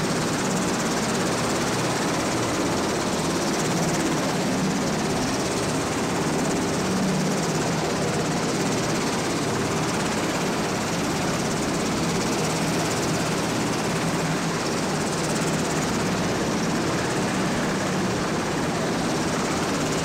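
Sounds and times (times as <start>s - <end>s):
helicopter engines running: 0.0s - 20.0s
helicopter rotor chop: 0.0s - 20.0s.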